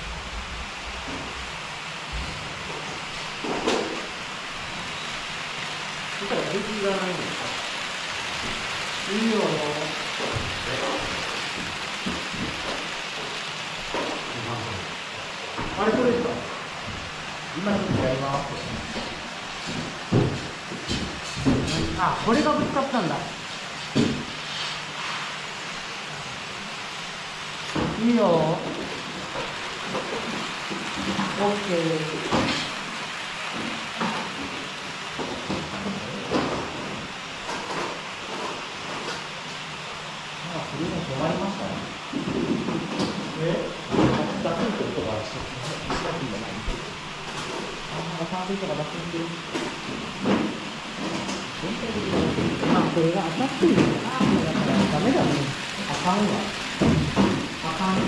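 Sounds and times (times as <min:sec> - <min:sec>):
model train running on track: 0:05.3 - 0:15.4, 0:24.9 - 0:34.0, 0:52.9 - 0:58.0
wheels clicking on rail joints: 0:49.0 - 0:58.0.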